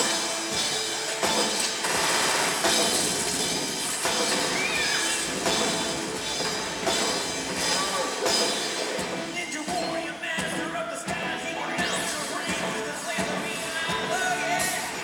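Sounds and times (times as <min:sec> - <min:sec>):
drum kit: 0:00.0 - 0:15.0
electric guitar: 0:00.0 - 0:15.0
lead singer's vocals: 0:09.3 - 0:15.0.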